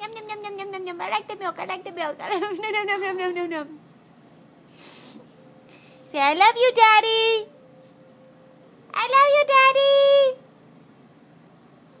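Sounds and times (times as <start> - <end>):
high-pitched baby-talk voice: 0.0 - 2.4
faint room noise: 0.0 - 12.0.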